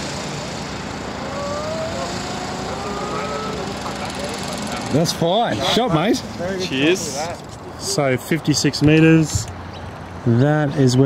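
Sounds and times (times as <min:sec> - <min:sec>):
vehicle engine rising pitch: 0:00.0 - 0:06.4
road traffic hum: 0:00.0 - 0:11.0.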